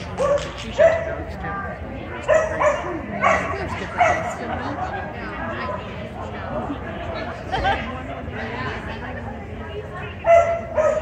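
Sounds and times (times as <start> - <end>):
voices in a hall: 0.0 - 11.0
dog barking: 0.2 - 1.2, 2.2 - 4.4, 10.3 - 11.0.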